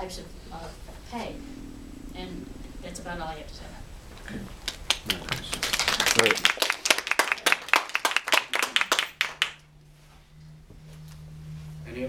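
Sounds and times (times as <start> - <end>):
people clapping: 4.4 - 9.6.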